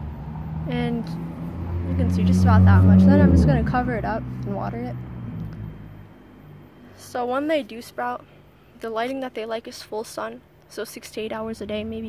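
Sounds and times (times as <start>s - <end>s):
low engine-like rumble: 0.0s - 9.6s.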